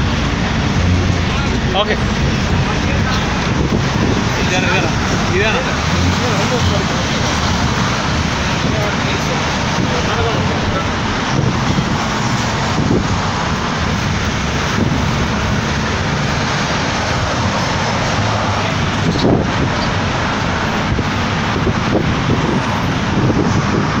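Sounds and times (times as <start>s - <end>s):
cars and motorcycles passing: 0.0s - 24.0s
vehicle rumble: 0.0s - 24.0s.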